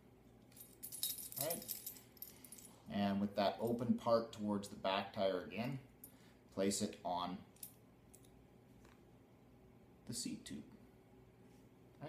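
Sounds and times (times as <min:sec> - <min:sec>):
metal clamp jingling and clinking: 0:00.5 - 0:02.8.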